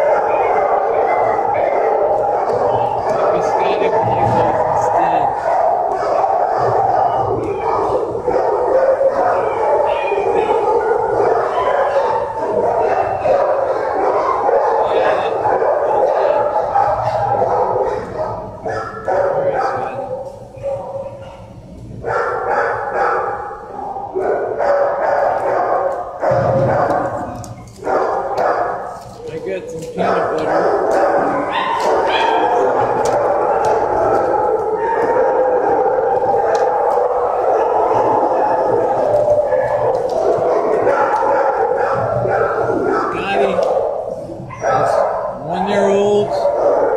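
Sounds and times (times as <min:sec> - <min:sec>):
many dogs barking and yipping: 0:00.0 - 0:46.9.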